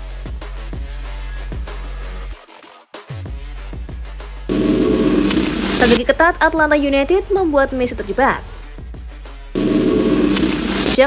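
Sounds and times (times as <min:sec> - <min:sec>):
electronic music: 0:03.3 - 0:11.0
narrator speaking: 0:05.6 - 0:08.6, 0:10.4 - 0:11.0.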